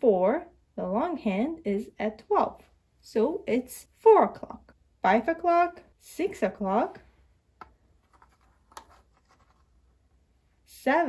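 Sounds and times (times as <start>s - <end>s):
plastic clock hand scraping: 8.0s - 9.8s.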